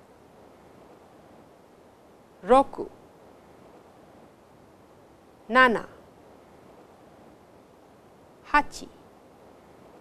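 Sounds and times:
faint recording hiss: 0:00.0 - 0:10.0.

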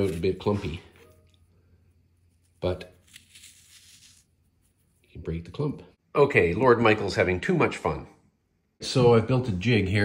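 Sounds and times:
sand sifted through fingers: 0:02.4 - 0:05.0.

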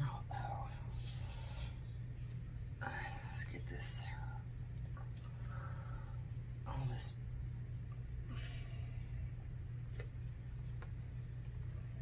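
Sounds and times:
woman whispering: 0:00.0 - 0:01.2, 0:02.8 - 0:04.5, 0:06.6 - 0:07.3
steady low hum: 0:00.0 - 0:12.0.

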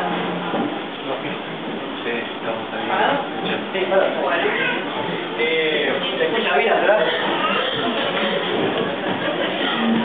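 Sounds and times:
people talking: 0:01.0 - 0:10.0.

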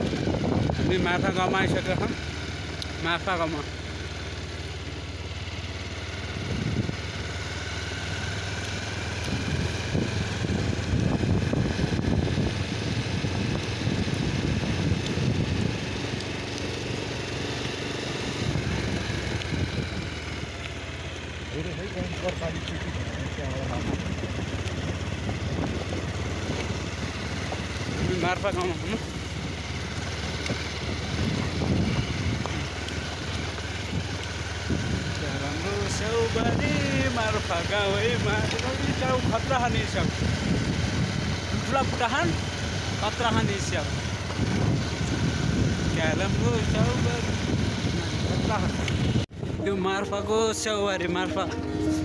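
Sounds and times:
motorcycle engine humming: 0:00.0 - 0:52.0
road and wind noise: 0:00.0 - 0:52.0.

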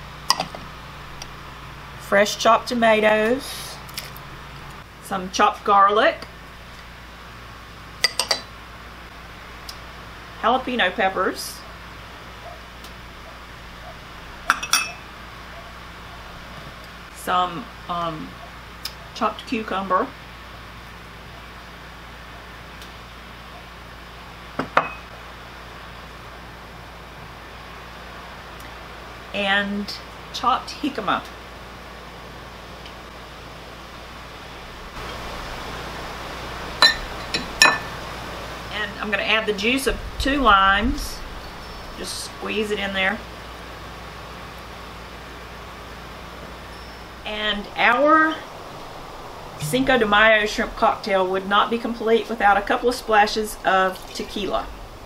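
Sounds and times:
glass bowls clinking: 0:08.0 - 0:08.5, 0:14.5 - 0:15.1, 0:36.8 - 0:38.0
faint hiss: 0:46.0 - 0:55.0.

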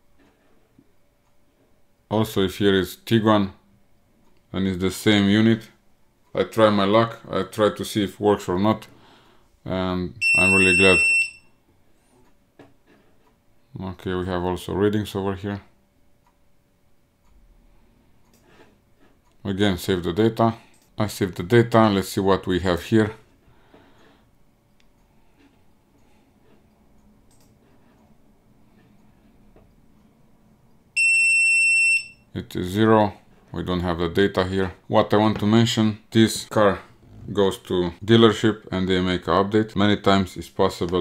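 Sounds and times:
high-pitched electronic beep: 0:10.2 - 0:11.4.

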